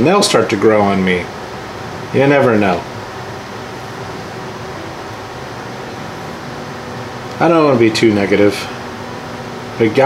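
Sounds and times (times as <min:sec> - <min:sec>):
continuous even hiss: 0:00.0 - 0:10.0
faint hum: 0:00.0 - 0:10.0.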